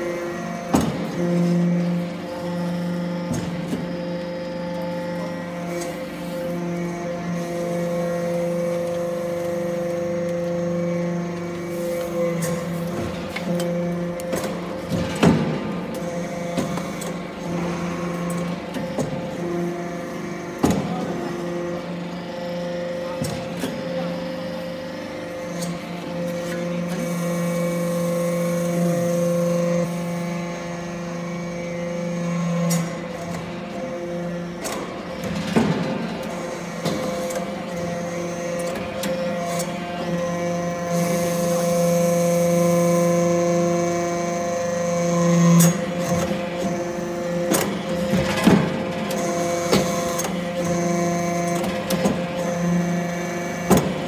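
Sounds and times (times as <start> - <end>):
hydraulic press humming: 0.0 - 54.0.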